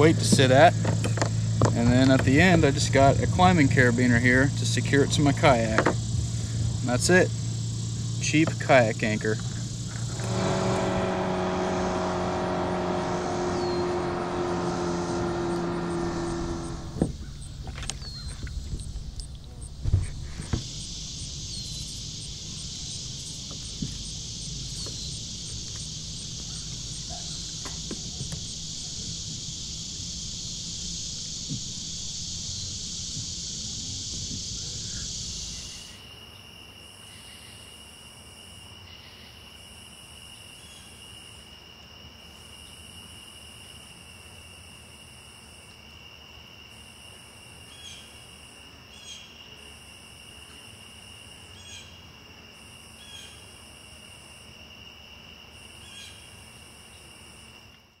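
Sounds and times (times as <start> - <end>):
crickets trilling: 0.0 - 58.0
high-pitched insect buzz: 9.4 - 36.1
faint chirps: 20.4 - 36.0.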